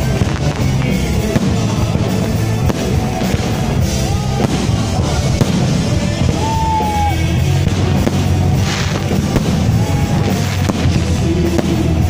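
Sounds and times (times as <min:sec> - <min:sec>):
fireworks bangs: 0:00.0 - 0:12.0
music with heavy low beat: 0:00.0 - 0:12.0.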